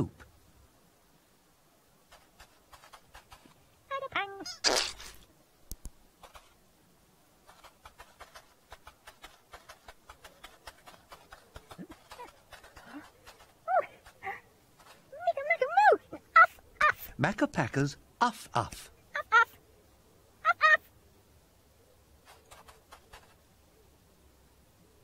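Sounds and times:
puppet squeaky babbling: 3.9s - 4.8s, 19.2s - 19.6s, 20.4s - 20.9s
toy cart clicking and rattling: 7.5s - 13.6s.

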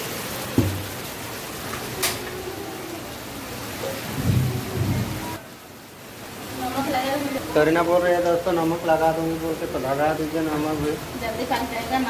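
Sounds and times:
heavy rain: 0.0s - 12.0s
sharp knock: 0.6s - 1.0s
thunder rumble: 4.1s - 5.4s.

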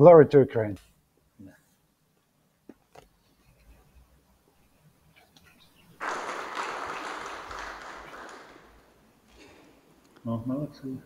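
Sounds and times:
audience applause: 6.0s - 9.0s.

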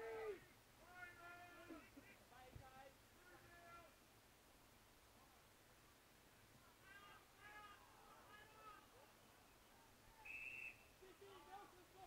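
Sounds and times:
faint whistle blast: 10.2s - 11.0s.

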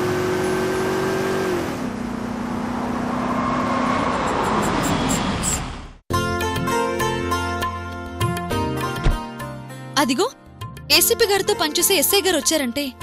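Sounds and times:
vehicle engine: 0.0s - 6.0s.

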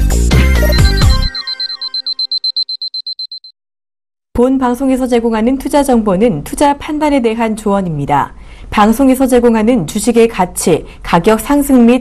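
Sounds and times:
intro music: 0.0s - 2.3s
high pulsing electronic beeping: 0.6s - 3.5s.

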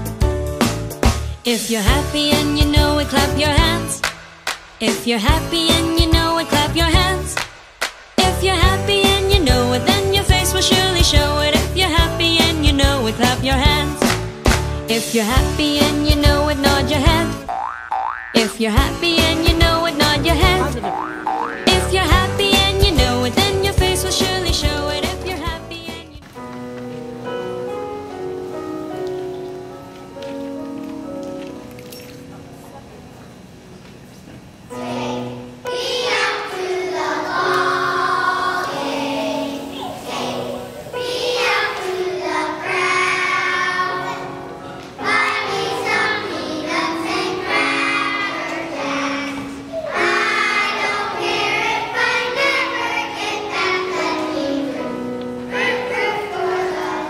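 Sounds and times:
piano accompaniment: 0.0s - 7.4s, 8.2s - 17.8s, 18.4s - 33.8s, 34.6s - 57.0s
children singing together: 34.7s - 57.0s.

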